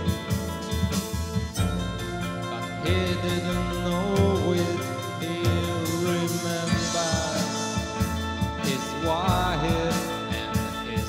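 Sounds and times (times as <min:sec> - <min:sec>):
band music with guitars and drums: 0:00.0 - 0:11.0.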